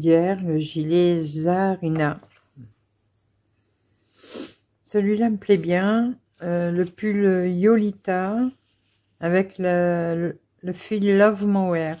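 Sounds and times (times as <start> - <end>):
short noisy breath: 4.1 - 4.6.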